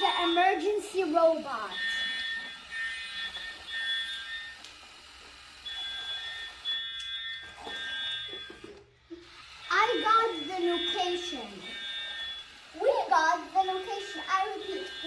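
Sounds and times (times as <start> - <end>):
two-tone electronic alarm beeping: 0.0 - 15.0.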